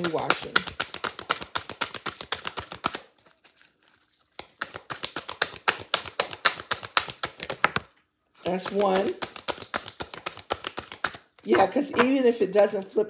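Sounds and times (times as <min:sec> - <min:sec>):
cards being shuffled: 0:00.0 - 0:12.2.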